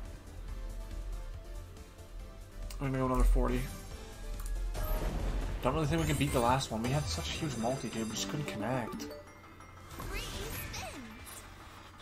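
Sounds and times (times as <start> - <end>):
slot game background music: 0.0 - 12.0.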